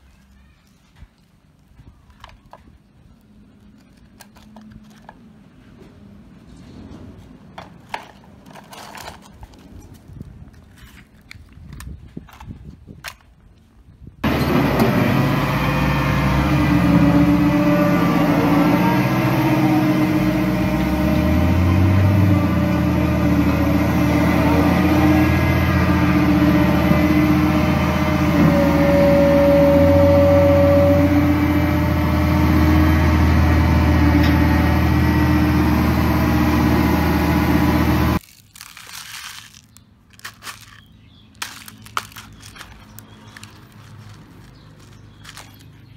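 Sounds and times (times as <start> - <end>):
plastic toy clicking on gravel: 0.3 - 5.3, 38.2 - 45.8
excavator diesel engine running: 14.2 - 38.2.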